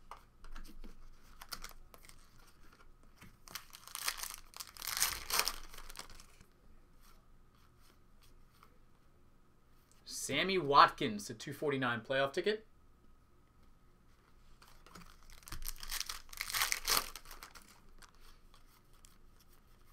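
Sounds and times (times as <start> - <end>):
wrapper tearing and crinkling: 3.5 - 6.4, 15.0 - 18.2.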